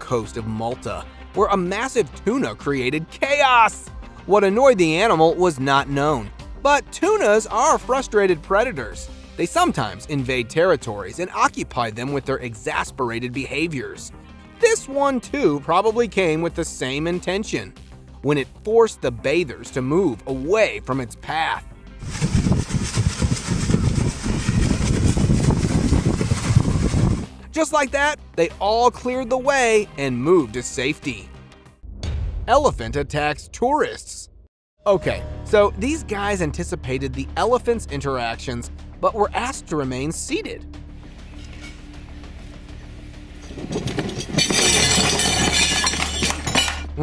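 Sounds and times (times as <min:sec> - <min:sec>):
background music: 0:00.0 - 0:22.2, 0:27.2 - 0:33.9, 0:34.8 - 0:47.0
plates and cutlery crashing: 0:43.4 - 0:47.0.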